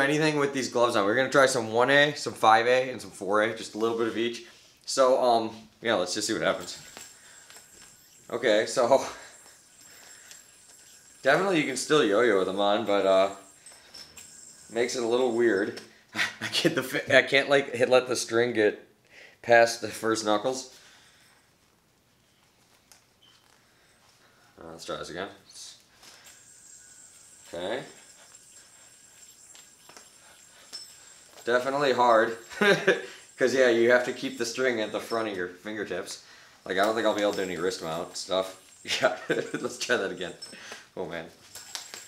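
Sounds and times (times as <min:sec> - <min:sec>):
yo-yo spinning on string: 0:05.9 - 0:16.0, 0:24.8 - 0:40.6, 0:41.3 - 0:42.0.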